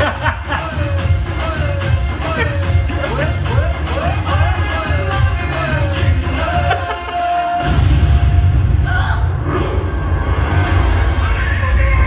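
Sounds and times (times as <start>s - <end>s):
deep cinematic rumble: 7.6s - 12.0s.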